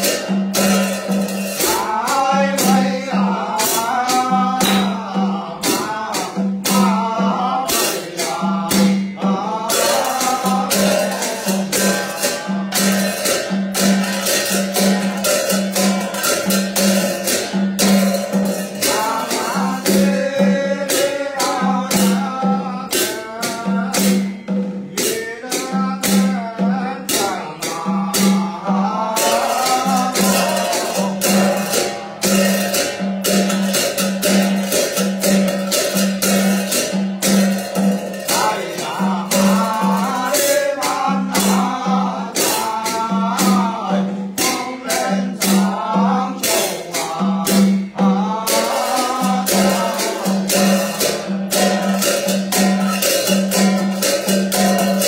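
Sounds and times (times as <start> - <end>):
ritual chanting: 0.0 - 55.0.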